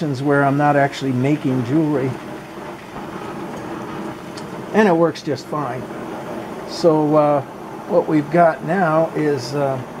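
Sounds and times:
gas torch flame hissing: 0.0 - 10.0.

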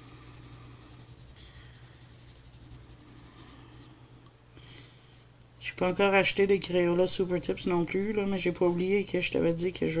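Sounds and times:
pencil scratching on paper: 0.0 - 3.5, 6.6 - 8.4
steady low hum: 0.0 - 10.0.

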